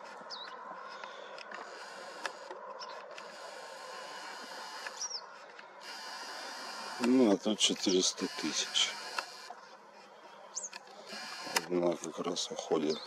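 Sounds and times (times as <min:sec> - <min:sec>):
open-air background noise: 0:00.0 - 0:13.0
bird chirp: 0:00.2 - 0:01.2, 0:04.7 - 0:05.4, 0:10.5 - 0:11.5, 0:12.6 - 0:13.0
click: 0:11.5 - 0:11.7.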